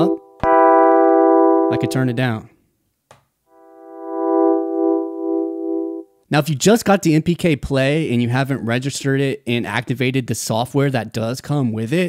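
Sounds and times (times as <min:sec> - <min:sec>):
electric piano chord: 0:00.0 - 0:02.4, 0:03.6 - 0:06.0.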